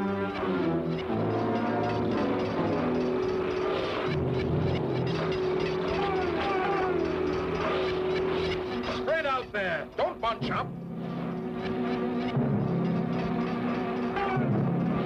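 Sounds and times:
cartoon background music: 0.0s - 15.0s
steady droning tone: 0.0s - 15.0s.

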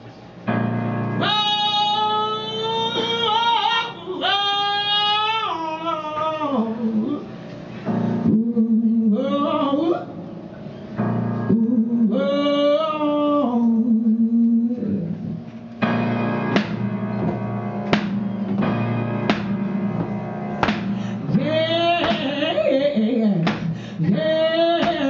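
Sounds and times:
piano chords: 0.0s - 25.0s
woman singing: 1.2s - 7.3s, 8.3s - 10.1s, 11.5s - 15.3s, 21.1s - 25.0s.

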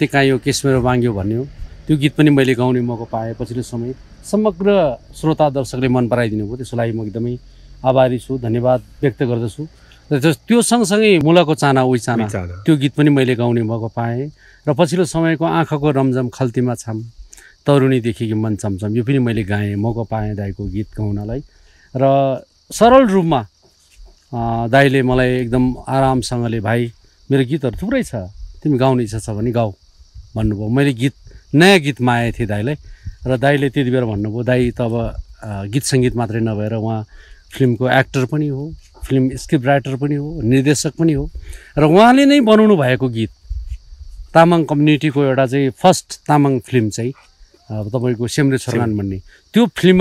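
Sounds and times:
man speaking: 0.0s - 21.4s, 22.0s - 23.5s, 24.3s - 29.8s, 30.4s - 43.3s, 44.3s - 50.0s
crickets chirping: 0.0s - 50.0s
man's drawn-out vocal sounds: 12.1s - 12.7s.

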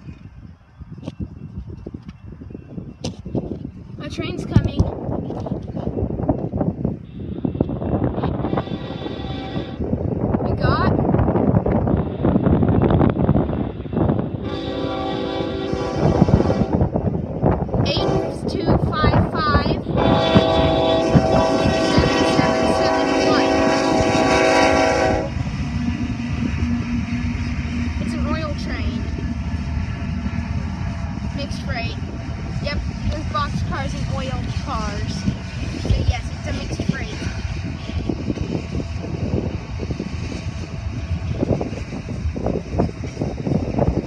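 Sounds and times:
low rumble: 0.0s - 44.0s
wind buffeting the microphone: 0.0s - 44.0s
locomotive air horn blast: 8.3s - 9.8s, 14.4s - 16.9s, 17.9s - 18.5s, 19.9s - 25.4s.

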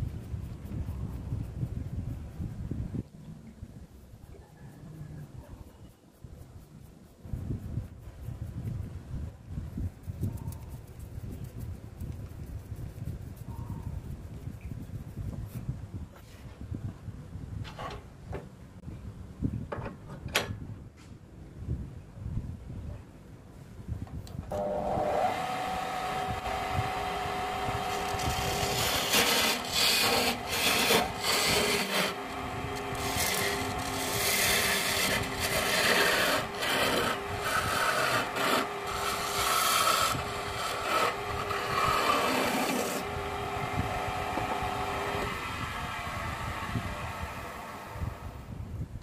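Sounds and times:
wood lathe motor humming: 24.5s - 48.4s
chisel scraping spinning wood: 24.6s - 46.3s.

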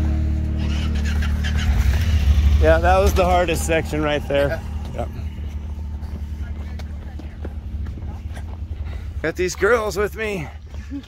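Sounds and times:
utility vehicle engine running: 0.0s - 11.0s.

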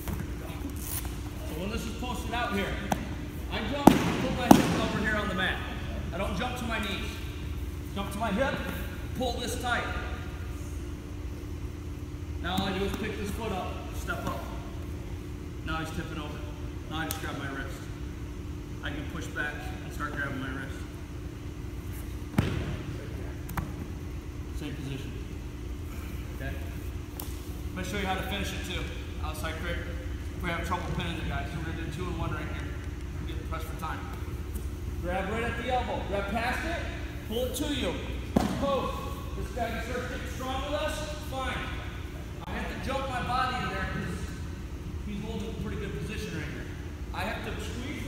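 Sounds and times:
low rumble with hum: 0.0s - 48.0s
man speaking: 35.0s - 44.4s.

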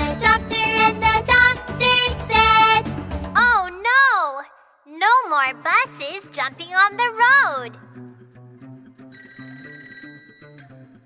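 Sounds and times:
electronic phone ring: 9.1s - 10.7s.

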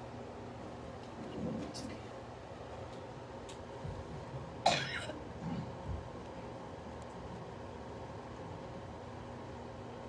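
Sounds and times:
person coughing: 4.6s - 5.6s.

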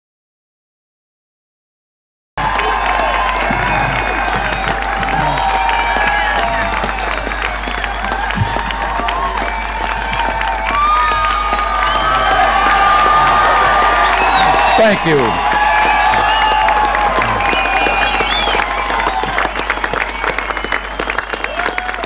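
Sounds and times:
crowd applauding: 2.4s - 22.0s
crowd cheering and shouting: 2.4s - 22.0s.

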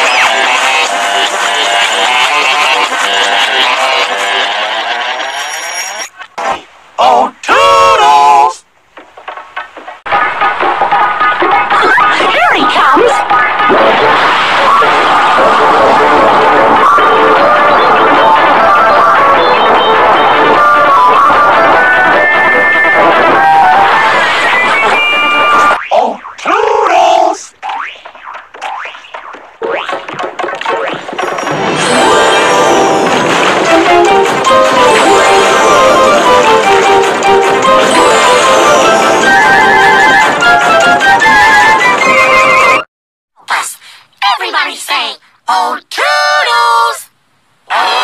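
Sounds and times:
pitch-shifted layered cartoon audio: 10.1s - 42.8s, 47.7s - 48.0s.

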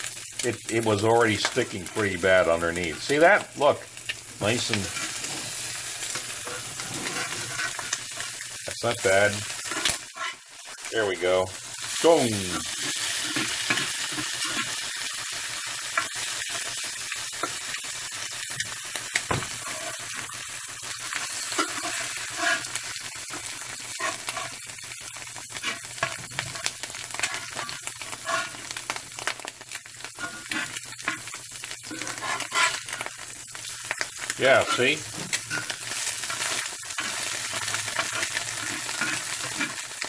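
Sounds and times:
eggs sizzling in skillet: 0.0s - 40.0s
spatula scraping and tapping pan: 6.0s - 8.3s, 30.2s - 33.1s, 34.6s - 39.8s.

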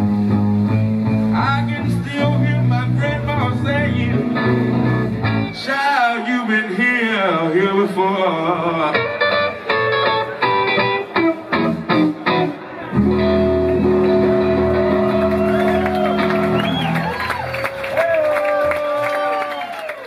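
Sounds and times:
electric blues guitar notes: 0.0s - 17.3s.

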